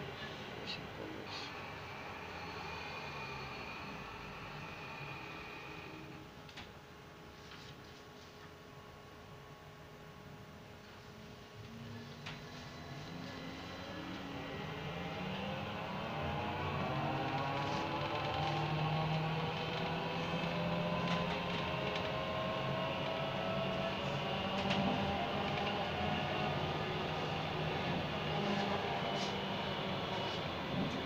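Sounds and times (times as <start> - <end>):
bus engine drive: 12.1 - 31.0.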